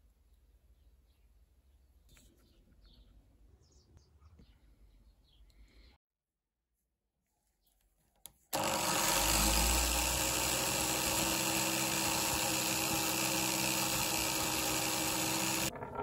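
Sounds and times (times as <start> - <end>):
wire wheel grinder brushing metal: 8.6 - 16.0.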